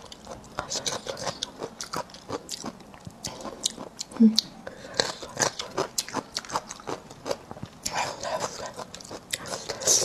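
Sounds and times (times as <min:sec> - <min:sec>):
crisp chewing crunches: 0:00.0 - 0:10.0.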